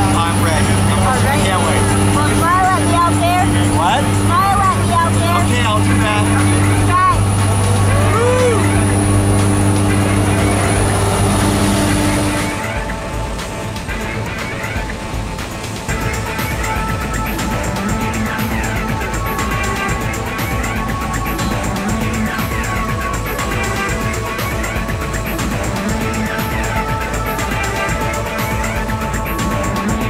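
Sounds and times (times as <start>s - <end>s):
airplane engine drone: 0.0s - 30.0s
music: 0.0s - 30.0s
voices: 0.0s - 30.0s.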